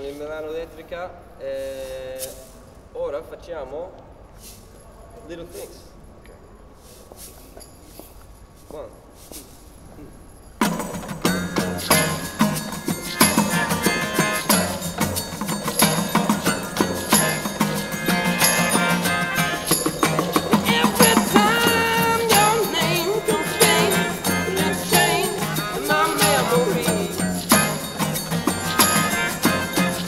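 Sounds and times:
acoustic guitar: 10.6s - 30.0s
shaker and maracas: 10.6s - 30.0s
saxophone: 11.4s - 30.0s
trumpet: 11.8s - 30.0s.

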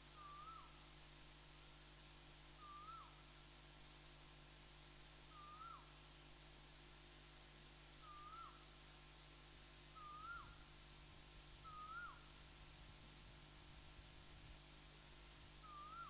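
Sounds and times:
faint steady low hum: 0.0s - 16.0s
bird calling whistled note: 0.2s - 0.7s, 2.6s - 3.1s, 5.3s - 5.8s, 8.0s - 8.6s, 10.0s - 10.6s, 11.6s - 12.2s, 15.6s - 16.0s.

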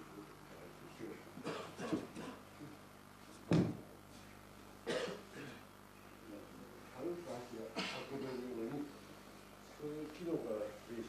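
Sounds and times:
person coughing: 1.4s - 2.4s, 4.8s - 5.6s, 7.8s - 8.3s.

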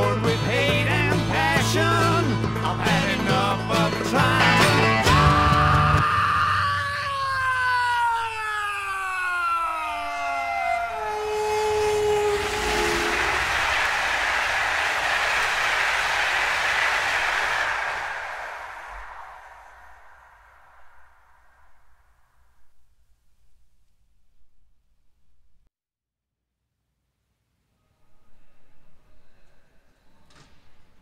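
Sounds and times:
multi-tone train horn: 10.9s - 13.7s
train rushing rumble: 11.2s - 21.4s.

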